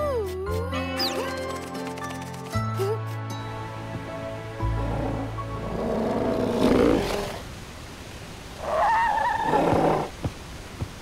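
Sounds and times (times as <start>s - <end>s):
background music: 0.0s - 7.0s.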